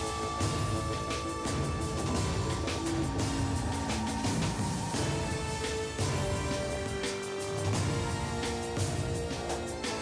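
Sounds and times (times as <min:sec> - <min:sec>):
tv theme music with steady beat: 0:00.0 - 0:10.0.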